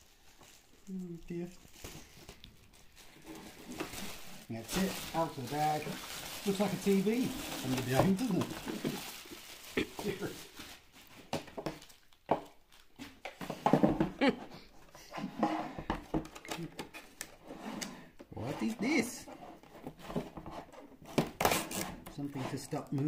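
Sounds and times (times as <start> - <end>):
person coughing: 9.8 - 10.3.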